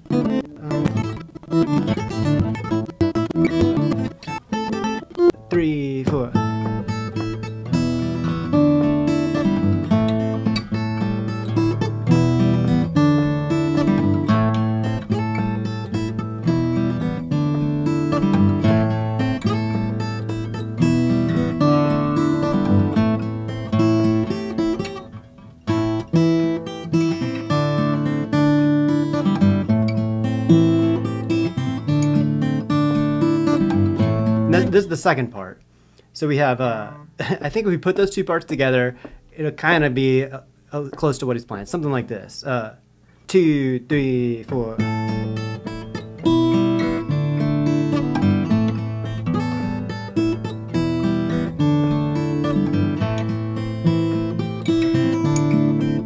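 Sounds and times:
fingerstyle acoustic guitars: 0:00.0 - 0:42.0, 0:43.1 - 0:56.0.

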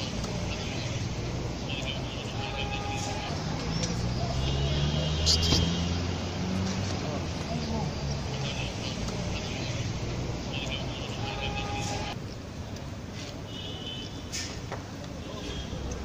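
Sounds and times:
street traffic rumble: 0:00.0 - 0:16.0.

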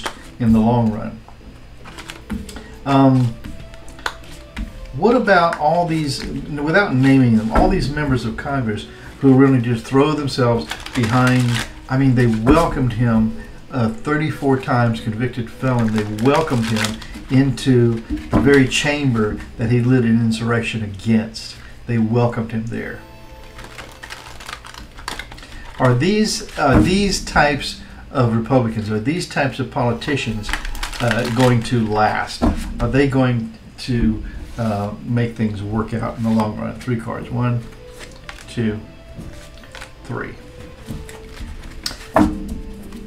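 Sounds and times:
soft background music: 0:00.0 - 0:43.0
cards riffle-shuffled: 0:01.8 - 0:08.4, 0:09.4 - 0:13.4, 0:14.2 - 0:19.5, 0:23.3 - 0:27.0, 0:30.1 - 0:32.8, 0:37.6 - 0:38.5, 0:39.2 - 0:42.2.

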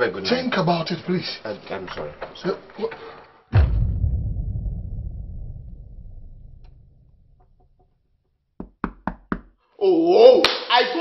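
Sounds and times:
knocking on wooden door: 0:08.6 - 0:09.5.

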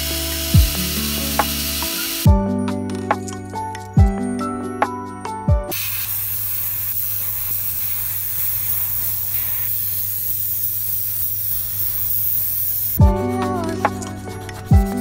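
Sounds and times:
airbrush spraying hiss: 0:00.0 - 0:02.3, 0:05.7 - 0:15.0.

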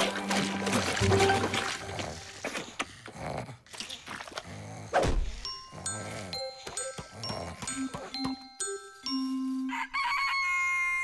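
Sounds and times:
cartoon snoring: 0:02.9 - 0:03.7, 0:04.4 - 0:05.0, 0:05.6 - 0:07.9.

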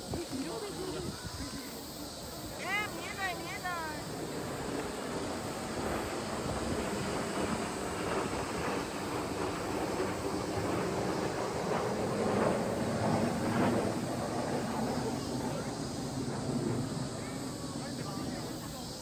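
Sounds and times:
distant jet rumble: 0:00.0 - 0:19.0.

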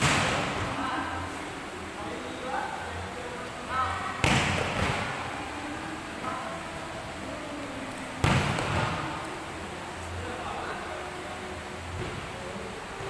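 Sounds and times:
volleyball smacks echoing: 0:00.0 - 0:00.8, 0:04.2 - 0:05.2, 0:08.2 - 0:09.1.

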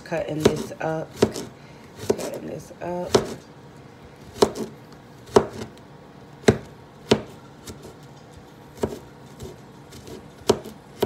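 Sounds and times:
knife chopping on cutting board: 0:00.3 - 0:02.4, 0:03.0 - 0:03.4, 0:04.2 - 0:05.8, 0:06.4 - 0:11.0.

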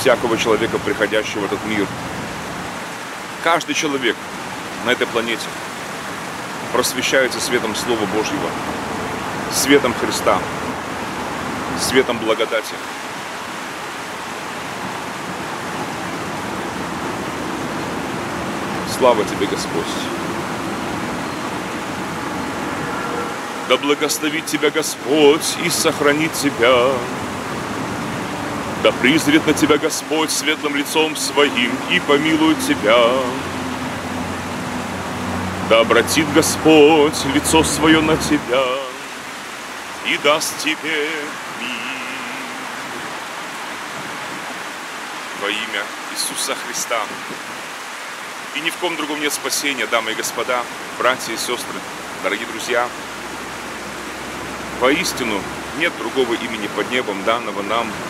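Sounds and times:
man's voice: 0:00.0 - 0:01.9, 0:03.4 - 0:04.2, 0:04.8 - 0:05.6, 0:06.7 - 0:08.6, 0:09.5 - 0:10.5, 0:11.7 - 0:12.8, 0:18.9 - 0:20.2, 0:23.7 - 0:27.3, 0:28.8 - 0:33.7, 0:35.7 - 0:39.2, 0:40.0 - 0:43.2, 0:45.4 - 0:47.2, 0:48.6 - 0:52.9, 0:54.8 - 0:58.0
steady rushing noise: 0:00.0 - 0:49.5
outdoor background hiss: 0:00.0 - 0:58.0.

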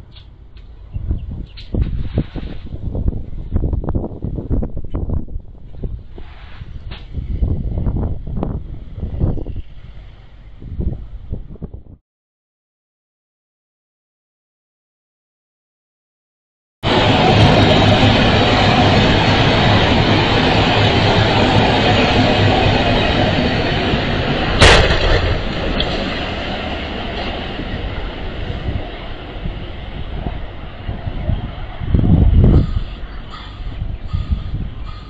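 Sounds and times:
train rumbling over bridge: 0:00.0 - 0:12.0, 0:16.8 - 0:35.0.

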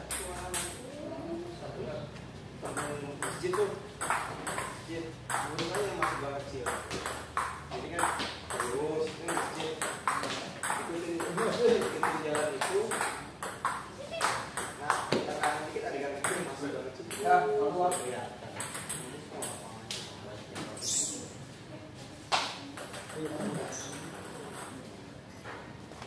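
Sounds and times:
ball bouncing on table: 0:02.6 - 0:16.5, 0:17.1 - 0:19.6
table tennis ball hitting paddles: 0:02.6 - 0:20.7, 0:22.3 - 0:24.8.

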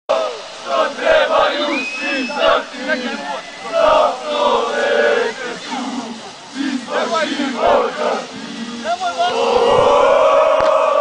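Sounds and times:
football crowd chanting and shouting: 0:00.1 - 0:11.0.

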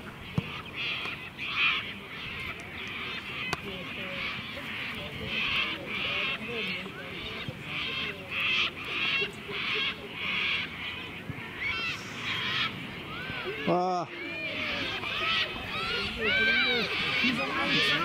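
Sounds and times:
birds chattering harshly: 0:00.0 - 0:18.0
whistled bird notes: 0:11.6 - 0:13.5.

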